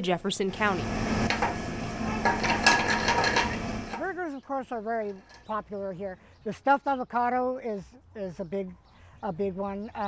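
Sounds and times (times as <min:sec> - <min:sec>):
metal pan rattling on burner grate: 0:01.2 - 0:04.1.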